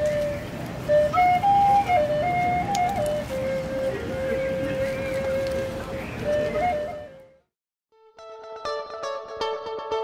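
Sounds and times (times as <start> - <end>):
flute melody: 0.0 - 7.5.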